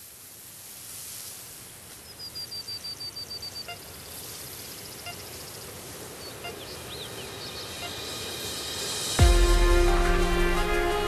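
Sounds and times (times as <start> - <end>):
steady background hiss: 0.0 - 9.2
birds calling: 2.1 - 8.1.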